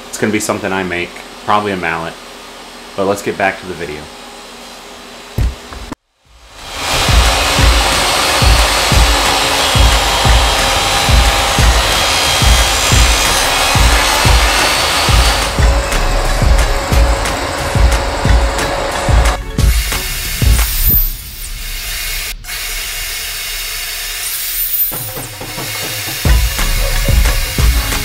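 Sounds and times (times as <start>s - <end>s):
table saw cutting: 4.2s - 28.0s
background music with drum beat: 6.4s - 21.6s, 24.8s - 28.0s.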